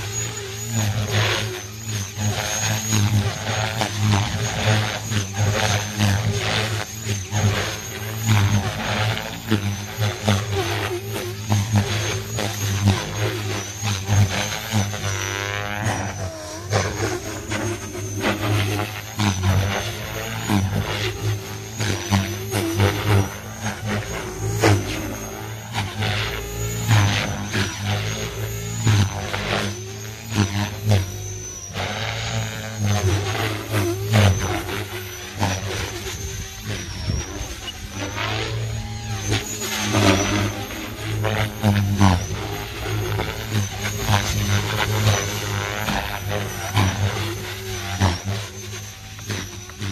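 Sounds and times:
helicopter rotor hum: 0.0s - 49.9s
high motor whine: 0.0s - 49.9s
swooshing blade noise: 0.0s - 49.9s.

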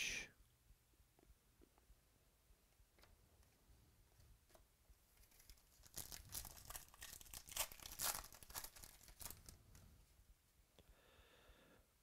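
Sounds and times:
foil wrapper crinkling and tearing: 5.2s - 9.6s.

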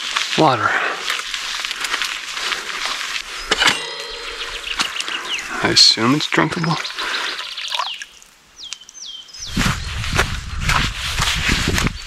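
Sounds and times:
bicycle rolling over gravel: 0.0s - 7.6s.

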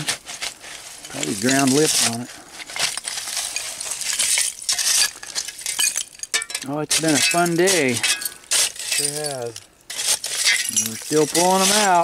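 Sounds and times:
glass shards clinking: 1.0s - 12.0s
digging tool scraping fill: 6.9s - 12.0s.

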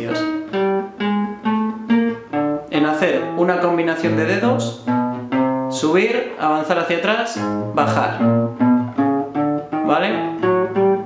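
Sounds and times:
classical guitar plucked notes: 0.0s - 11.0s.

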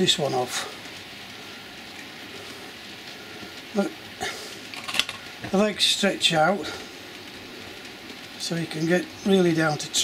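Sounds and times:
model train running on track: 5.5s - 10.0s.

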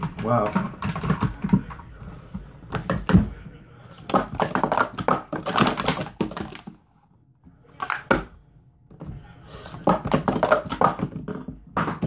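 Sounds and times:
plastic cups clacking: 0.0s - 3.3s, 3.9s - 6.8s, 7.8s - 8.4s, 9.0s - 12.0s.

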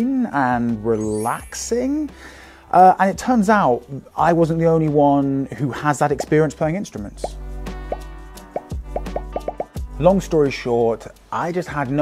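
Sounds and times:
background music: 0.0s - 12.0s
rising plop sound effects: 8.5s - 9.7s.

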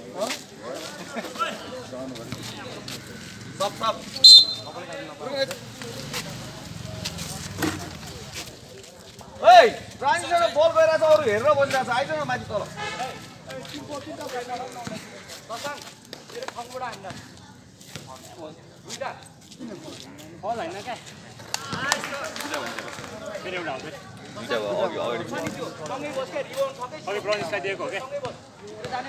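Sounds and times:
voices talking and calling out: 0.0s - 29.0s.

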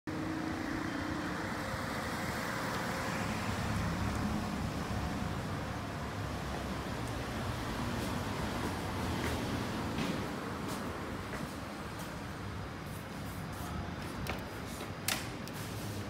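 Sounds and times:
road traffic hum: 0.1s - 16.0s.

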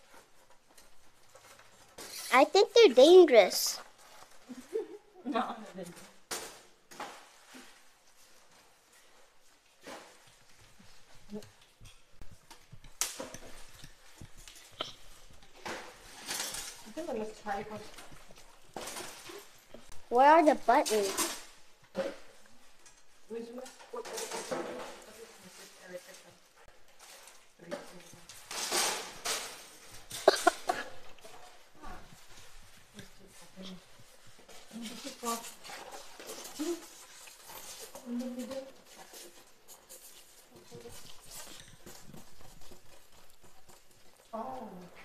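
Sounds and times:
plastic wrap rustling and crinkling: 0.0s - 45.0s.

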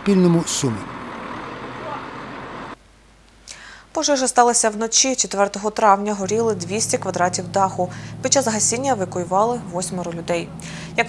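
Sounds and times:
crane engine running: 0.0s - 2.8s, 6.1s - 11.0s.

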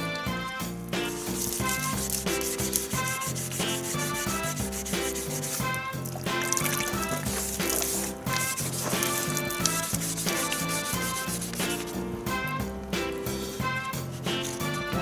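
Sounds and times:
background music: 0.0s - 15.0s
sandpaper scrubbing on paint: 1.0s - 12.1s, 13.3s - 15.0s.

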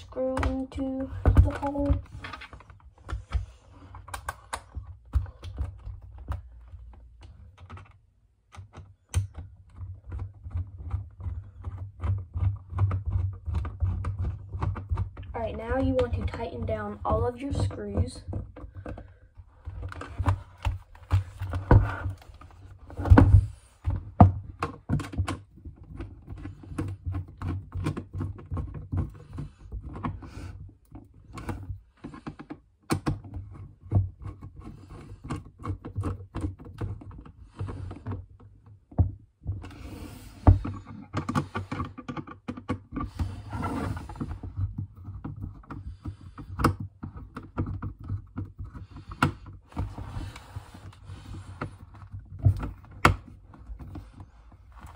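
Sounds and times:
screwdriver clicking on plastic helmet: 0.3s - 16.4s, 23.9s - 39.7s, 40.4s - 43.3s, 44.0s - 49.6s.

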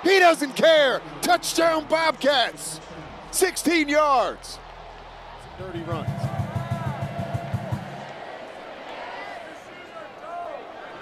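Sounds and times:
stadium crowd murmur: 0.0s - 11.0s
fast drum beat: 5.5s - 8.1s.

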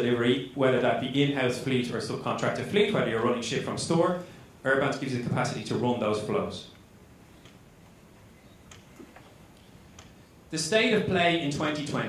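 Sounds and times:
faint clicks: 6.7s - 7.6s, 8.5s - 10.2s.

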